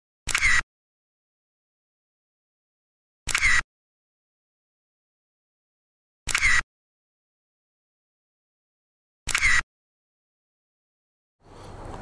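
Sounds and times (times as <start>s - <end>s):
camera shutter click: 0.3s - 0.6s, 3.3s - 3.6s, 6.3s - 6.6s, 9.3s - 9.6s.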